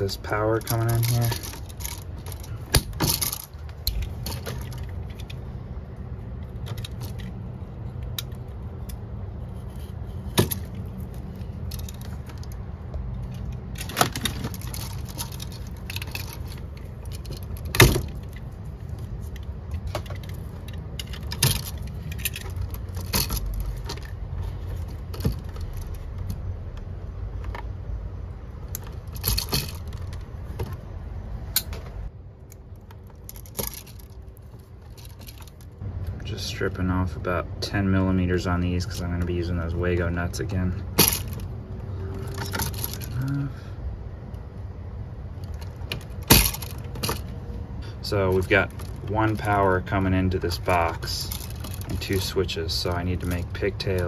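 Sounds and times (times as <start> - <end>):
electrical hardware clicks and snips: 0.0 - 5.5, 6.4 - 27.7
metallic jingling of wire: 0.0 - 5.5, 6.4 - 26.2.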